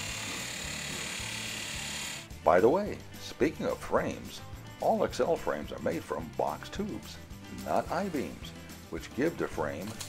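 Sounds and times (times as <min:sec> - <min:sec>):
chop saw grinding metal: 0:00.0 - 0:02.3.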